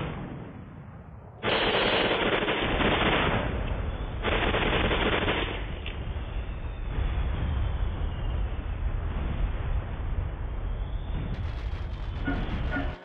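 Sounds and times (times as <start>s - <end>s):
machine-gun fire: 1.4s - 3.6s, 4.2s - 5.8s, 11.3s - 13.0s
low rumble: 2.8s - 13.0s.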